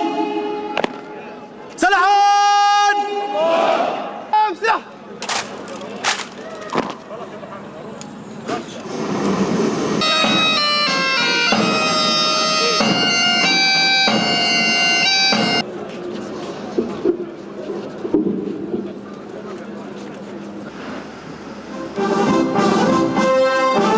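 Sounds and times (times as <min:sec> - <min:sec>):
bagpipes playing a melody: 0:10.0 - 0:15.6.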